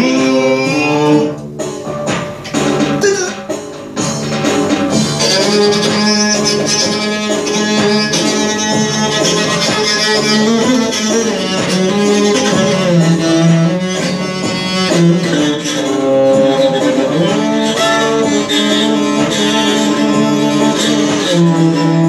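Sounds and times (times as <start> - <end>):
bowed bass long notes: 0.0 - 22.0
electronic organ backing: 0.0 - 22.0.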